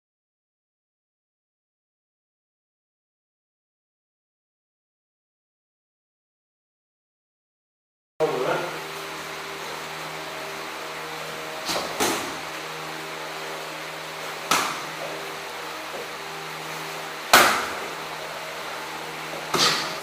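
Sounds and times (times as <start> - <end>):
electrical hum: 8.2 - 20.0
gloved strikes smacking: 14.5 - 14.9, 17.3 - 17.8.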